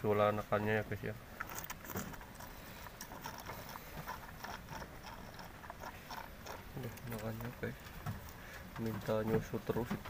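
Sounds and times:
goat slurping water: 1.3 - 10.0.

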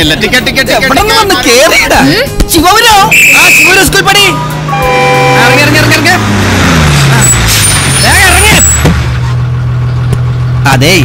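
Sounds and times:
bus diesel engine running down: 2.9 - 11.0
brake squeal: 3.1 - 9.6.

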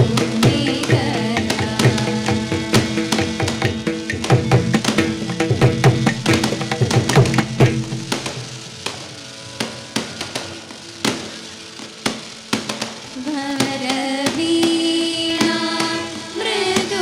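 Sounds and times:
young voices singing: 0.0 - 4.2, 13.2 - 17.0
steady held drone tone: 0.0 - 12.0
drum strokes: 0.0 - 17.0.

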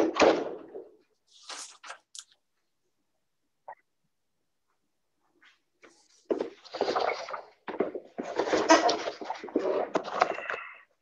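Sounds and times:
paper rustling: 1.2 - 2.4.

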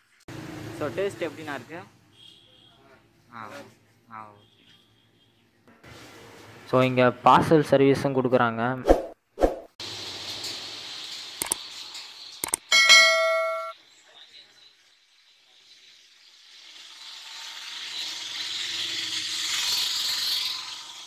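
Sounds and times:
bright bell ding: 12.7 - 13.8.

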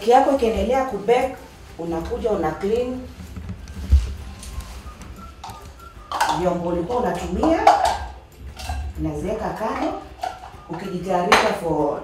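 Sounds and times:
bowl and utensils clattering: 5.2 - 11.9.

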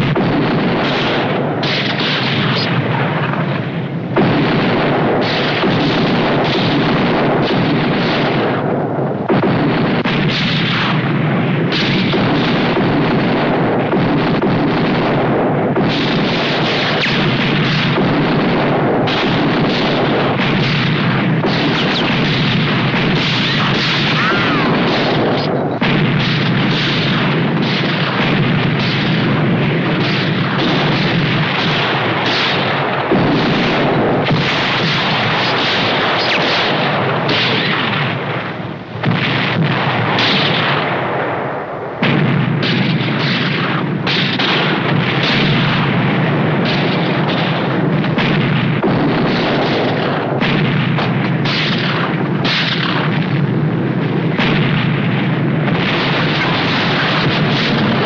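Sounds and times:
cannon fire: 0.0 - 58.0
gunfire: 0.0 - 58.0
shells bursting: 0.0 - 58.0.

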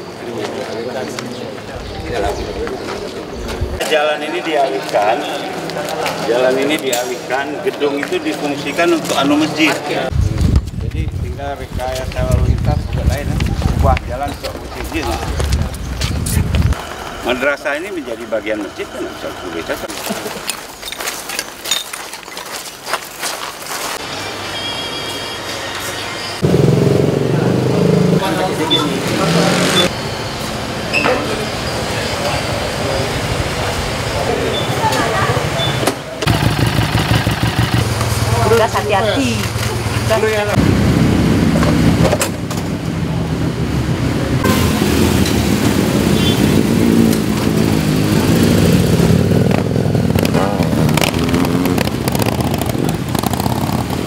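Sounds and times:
motorcycle engines running: 4.6 - 19.9, 26.4 - 54.0
motorcycle engine running: 26.4 - 29.9, 36.2 - 43.7, 44.4 - 54.0.

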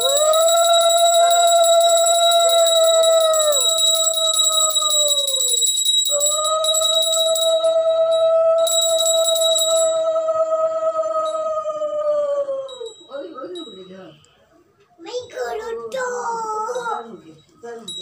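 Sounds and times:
small brass bell ringing rapidly: 0.0 - 10.0.

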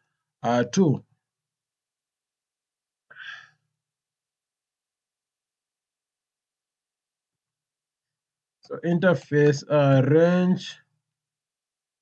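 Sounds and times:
man sighing into microphone: 3.1 - 3.6.

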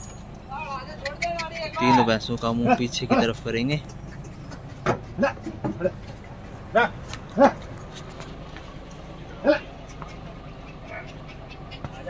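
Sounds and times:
low background hum: 0.0 - 12.0
dog barking: 6.8 - 7.6.

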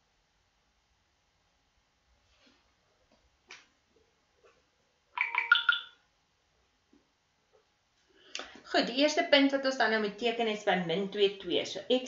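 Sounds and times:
electronic chime: 5.2 - 5.9.

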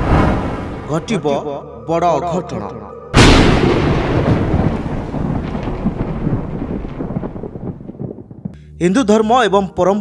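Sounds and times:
rolling thunder rumble: 0.0 - 1.1, 3.2 - 8.6.

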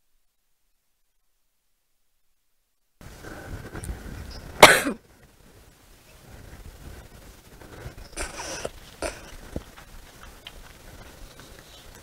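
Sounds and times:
person coughing: 4.6 - 5.0.

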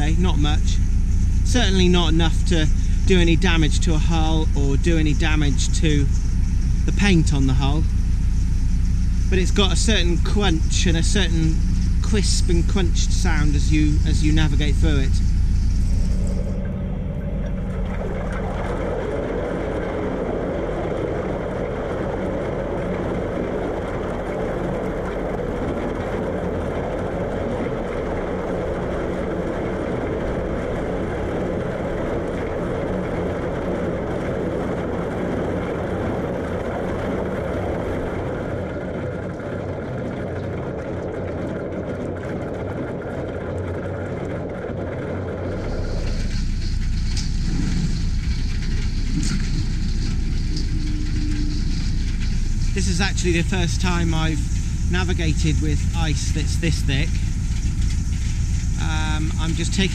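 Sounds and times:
boat engine running: 0.0 - 59.9.

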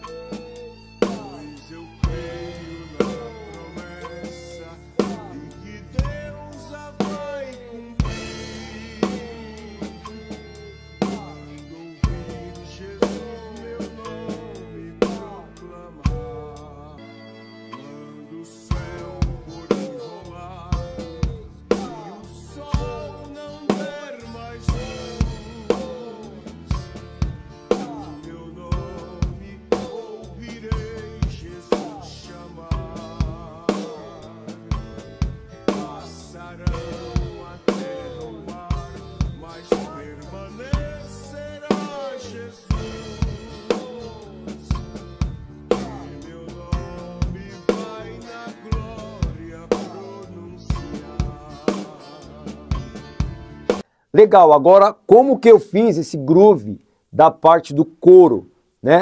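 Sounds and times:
drum kit playing a groove: 0.0 - 16.4, 18.7 - 53.9
hymn backing track: 0.0 - 59.0.

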